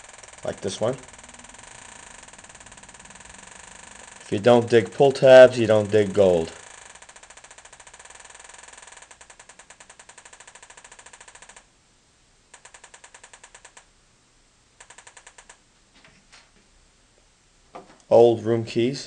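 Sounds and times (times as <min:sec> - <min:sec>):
metal detector clicking: 0:00.0 - 0:11.6.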